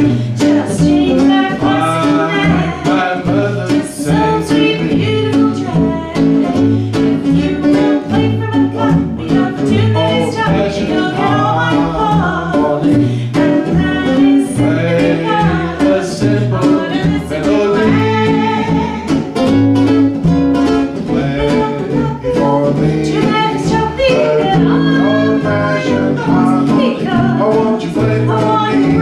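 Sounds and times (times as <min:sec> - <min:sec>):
man singing: 0:00.0 - 0:19.5, 0:20.6 - 0:29.0
cello playing: 0:00.0 - 0:29.0
classical guitar: 0:00.0 - 0:29.0.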